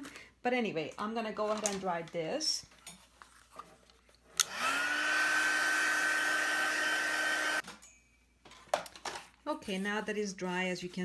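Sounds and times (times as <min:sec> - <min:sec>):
electric dryer fan whining: 0:04.4 - 0:07.6.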